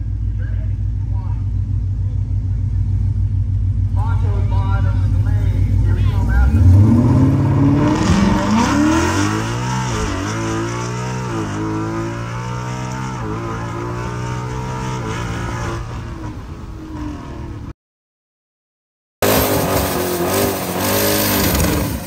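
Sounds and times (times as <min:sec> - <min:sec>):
car engine accelerating hard: 0:03.9 - 0:17.7, 0:19.2 - 0:22.0.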